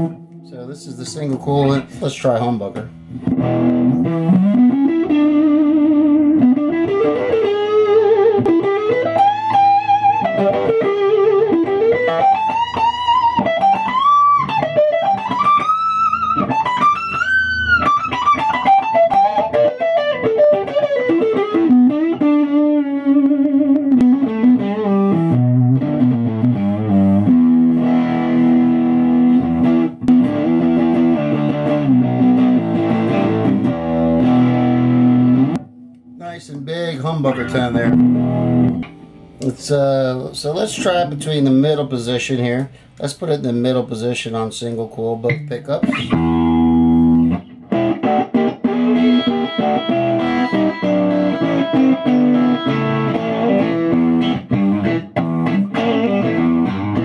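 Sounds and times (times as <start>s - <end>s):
electric guitar lead and riffs: 0.0s - 43.1s, 45.2s - 57.0s.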